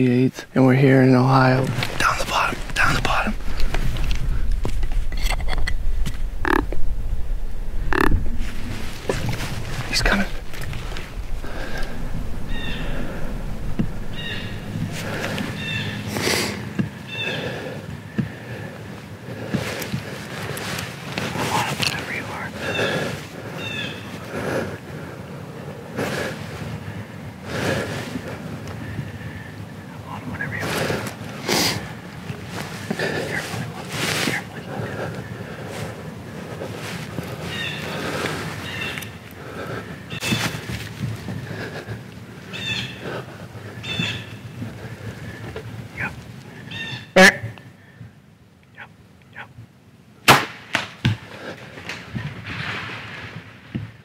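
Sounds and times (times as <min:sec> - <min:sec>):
quiet whispering: 0:00.3 - 0:31.9, 0:32.5 - 0:38.6, 0:44.6 - 0:46.2, 0:48.7 - 0:49.6.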